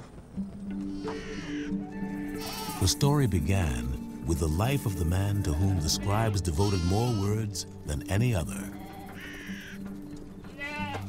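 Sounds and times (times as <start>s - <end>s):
low music drone: 0.4s - 10.5s
harsh rasping animal call: 0.8s - 2.9s, 5.5s - 7.5s, 8.5s - 9.9s, 10.5s - 11.0s
wavering animal bleat: 0.9s - 2.9s, 5.4s - 7.5s, 8.5s - 9.8s, 10.5s - 11.0s.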